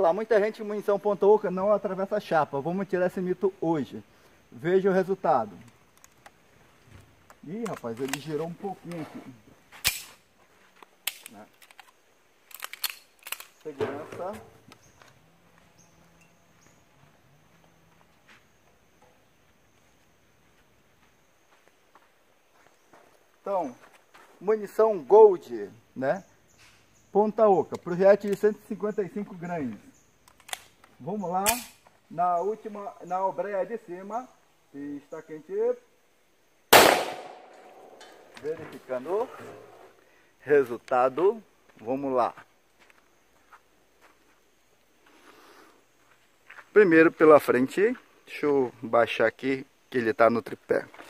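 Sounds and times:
pistol metallic clicks: 9.8s - 10.2s, 11.0s - 13.7s, 30.2s - 31.8s, 36.7s - 38.3s
pistol shot: 36.7s - 38.1s.

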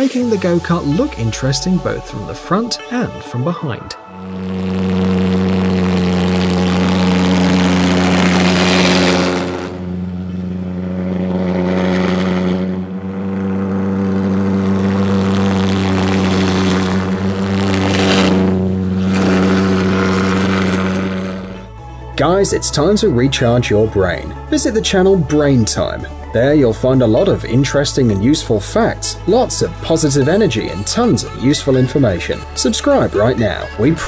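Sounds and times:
pulsejet engine drone: 0.0s - 34.0s
loud rushing noise: 4.0s - 22.8s.

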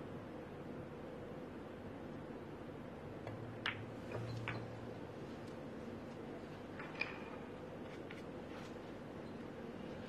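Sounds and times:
cue striking ball click: 3.2s - 4.8s
billiard balls clicking: 3.2s - 4.9s, 6.7s - 8.2s.

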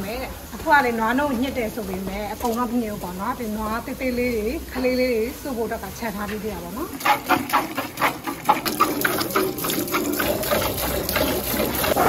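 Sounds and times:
milk squirting: 6.9s - 12.0s.

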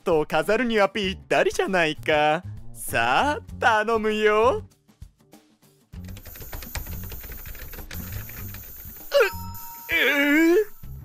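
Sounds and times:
cartoon gas spraying hiss: 6.2s - 11.0s.

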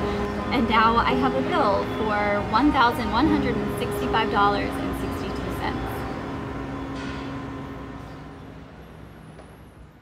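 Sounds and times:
outdoor low hum: 0.0s - 10.0s.

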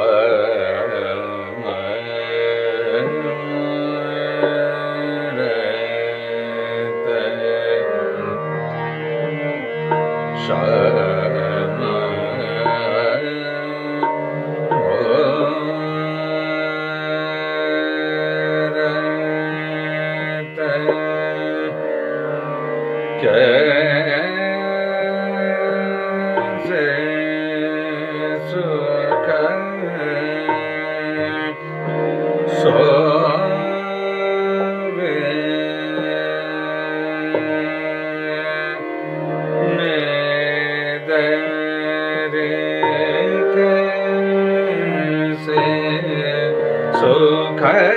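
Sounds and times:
man singing classical vocals: 0.0s - 47.9s.

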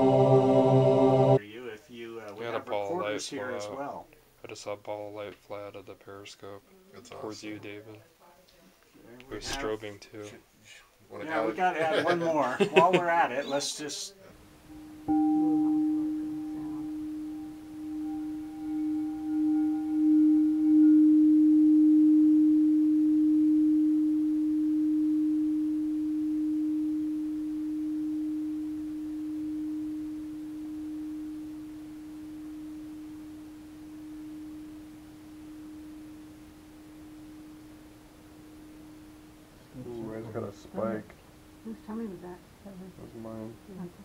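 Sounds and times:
singing bowl low tone: 0.0s - 1.4s, 14.7s - 42.0s.

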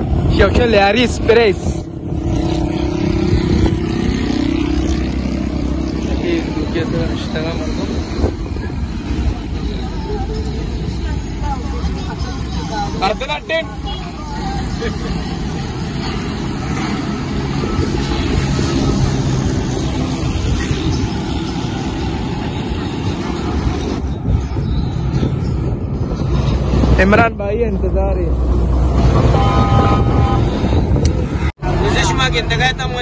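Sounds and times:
van engine and road noise: 0.0s - 33.0s
people's voices: 5.8s - 21.2s.

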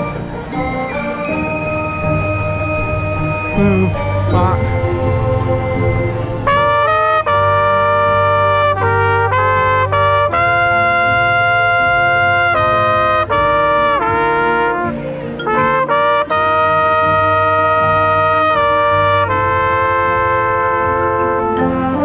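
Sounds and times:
trumpet melody: 0.0s - 22.0s
marching band brass section: 6.5s - 22.0s.

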